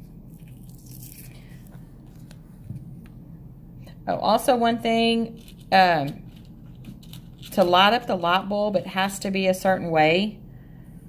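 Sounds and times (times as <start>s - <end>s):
low room hum: 0.0s - 11.0s
plastic blister pack crinkling: 0.3s - 2.4s, 5.3s - 8.2s.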